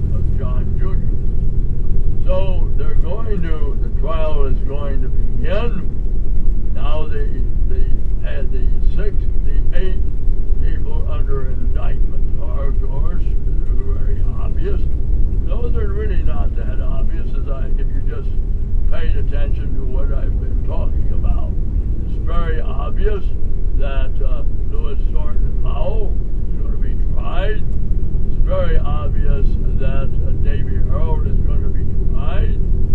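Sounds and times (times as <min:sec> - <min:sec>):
indistinct talking: 0:00.0 - 0:01.2, 0:01.9 - 0:06.0, 0:06.7 - 0:32.6
vehicle rumble: 0:00.0 - 0:32.9.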